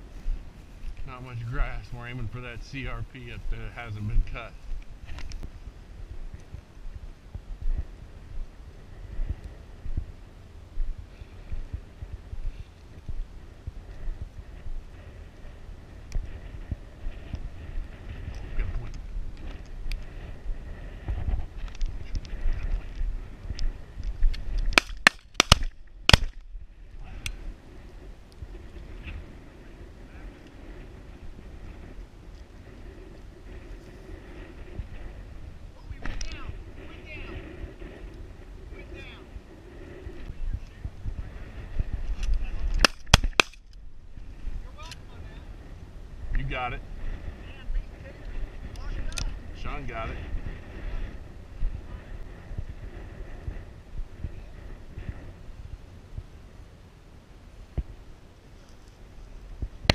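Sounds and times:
shotgun shots: 0:24.8 - 0:26.4.

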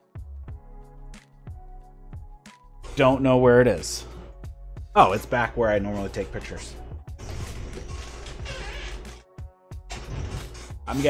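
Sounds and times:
gaming chair creaking: 0:07.2 - 0:09.3, 0:09.9 - 0:11.0.

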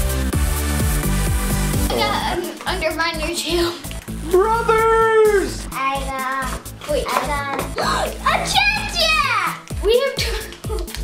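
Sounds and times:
background music: 0:00.0 - 0:11.0
child exclaiming: 0:01.9 - 0:10.7.

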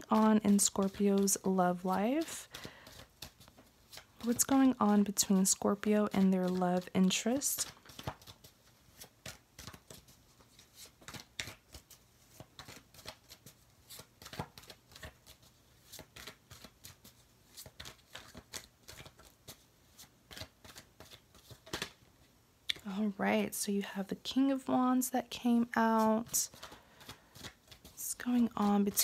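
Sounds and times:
cards being shuffled: 0:00.0 - 0:22.0, 0:25.8 - 0:29.0.

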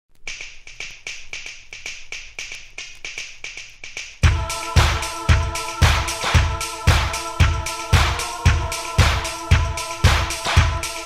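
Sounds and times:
electronic percussion clicks: 0:00.1 - 0:11.0.

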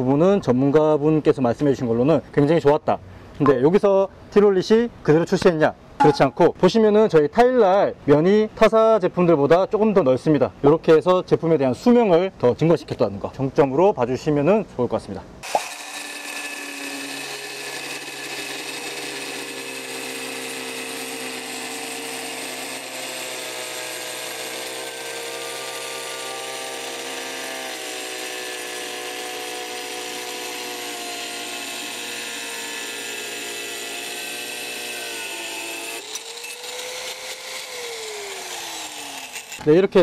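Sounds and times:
angle grinders cutting tile: 0:15.4 - 0:39.6
grinder winding down: 0:15.4 - 0:39.6.

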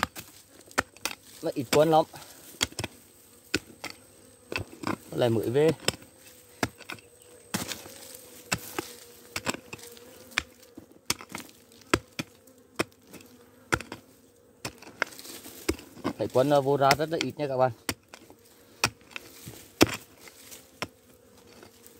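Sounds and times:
bees buzzing: 0:00.0 - 0:21.9
digging tool striking stony soil: 0:00.0 - 0:21.9.

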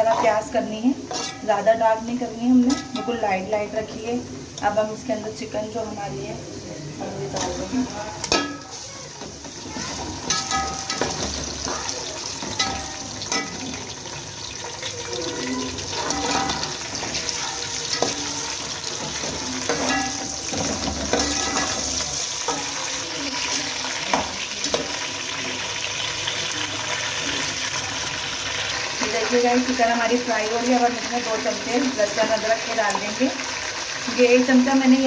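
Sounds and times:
metal spatula scraping pot: 0:00.0 - 0:04.0, 0:07.3 - 0:24.9
chicken and onions sizzling in oil: 0:00.0 - 0:35.0.

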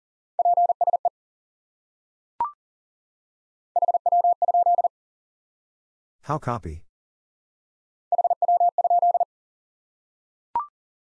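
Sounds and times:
morse code beeps: 0:00.4 - 0:01.1, 0:03.8 - 0:04.9, 0:08.1 - 0:09.3.

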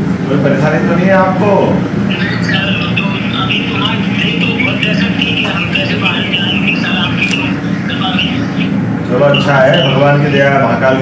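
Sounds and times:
steady background noise: 0:00.0 - 0:11.0
indistinct voices through phone speaker: 0:01.6 - 0:11.0.

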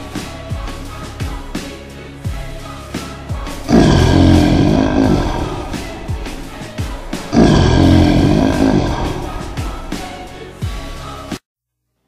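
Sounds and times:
background music with drum beat: 0:00.0 - 0:11.4
lion roaring: 0:03.6 - 0:10.3.

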